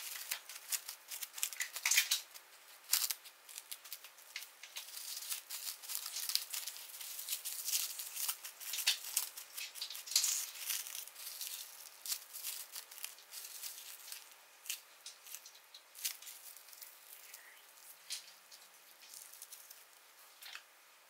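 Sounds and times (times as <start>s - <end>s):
plastic wrap crinkling: 0.0s - 20.7s.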